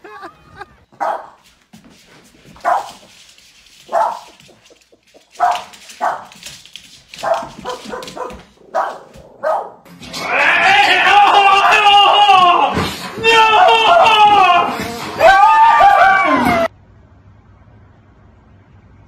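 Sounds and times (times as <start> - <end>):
dog barking: 1.0 - 1.4, 2.6 - 3.0, 3.9 - 4.5, 5.4 - 6.4, 7.2 - 9.8.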